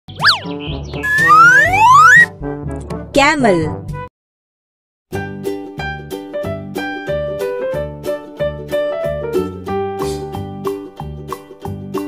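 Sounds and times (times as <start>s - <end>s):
light children's music: 0.1s - 3.1s, 5.1s - 12.0s
cartoon boing: 1.0s - 2.3s
rising whistle-like glide: 1.0s - 2.3s.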